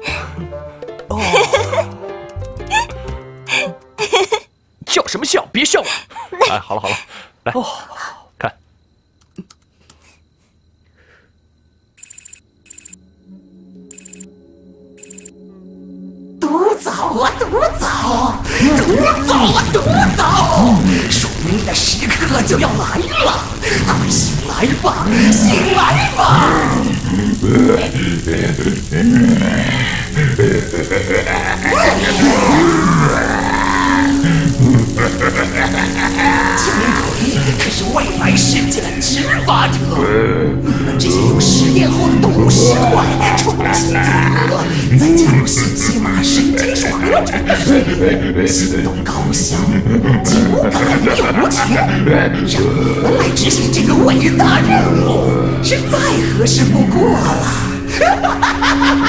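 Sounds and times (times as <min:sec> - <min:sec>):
faint clicks: 0:09.2 - 0:10.0
electronic ringing trill: 0:12.0 - 0:13.0, 0:13.6 - 0:15.5
low sustained drone: 0:13.0 - 0:59.0
dramatic background music: 0:13.1 - 0:59.0.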